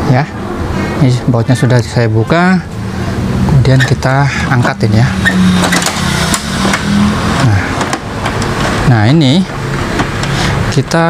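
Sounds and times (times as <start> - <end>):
steady low hum: 0.0 - 10.9.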